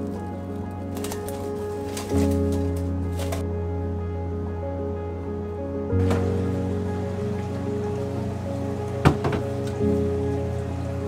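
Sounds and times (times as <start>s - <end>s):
background music sustained notes: 0.0s - 11.0s
steady rain-like hiss: 6.0s - 11.0s.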